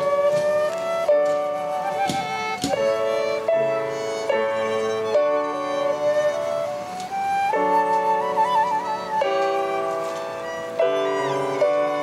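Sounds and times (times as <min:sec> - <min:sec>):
flute violin and keyboard trio: 0:00.0 - 0:12.0.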